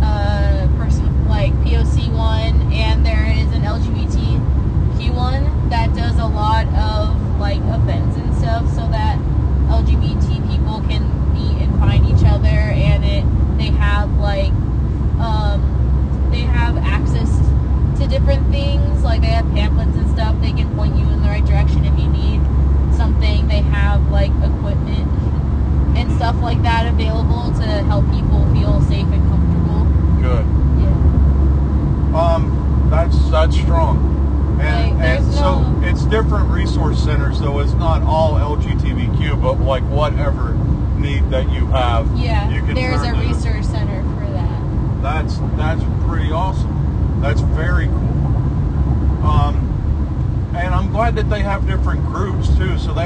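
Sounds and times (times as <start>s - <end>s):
steady low rumble: 0.0s - 53.0s
man talking: 30.2s - 30.5s, 32.2s - 34.0s, 34.6s - 43.5s, 45.0s - 48.0s, 49.2s - 49.7s, 50.5s - 53.0s.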